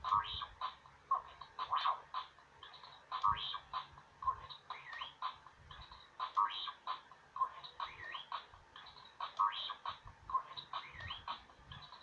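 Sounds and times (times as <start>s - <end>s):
electronic toy beeps and whistles: 1.6s - 12.0s.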